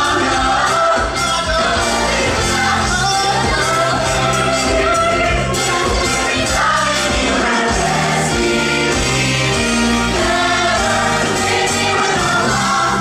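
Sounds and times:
cast singing together: 0.0s - 13.0s
live band playing: 0.0s - 13.0s.

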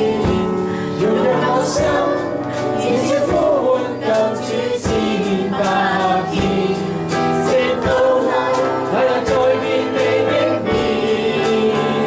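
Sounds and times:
instrumental accompaniment: 0.0s - 12.0s
voices singing worship song: 0.0s - 12.0s.

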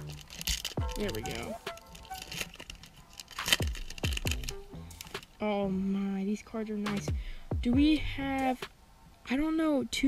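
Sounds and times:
plastic wrapper crackling: 0.0s - 5.4s
music: 0.0s - 6.0s, 6.6s - 8.7s.

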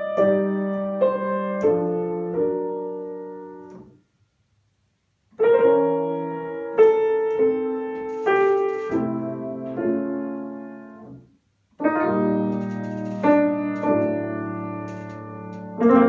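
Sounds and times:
grand piano slow chords: 0.0s - 4.0s, 5.4s - 16.0s.

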